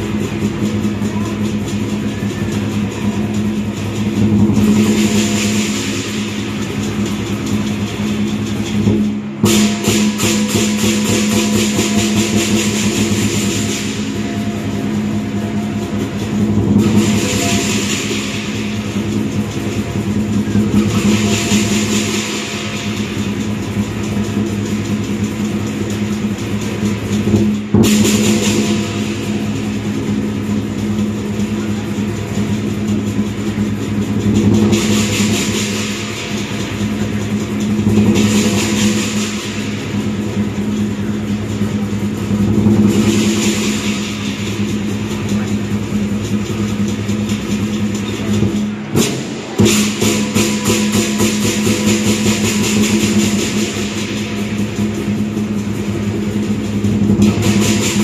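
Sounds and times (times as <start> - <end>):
clashing cymbals: 0.0 - 58.0
large drum rolling beat: 0.0 - 58.0.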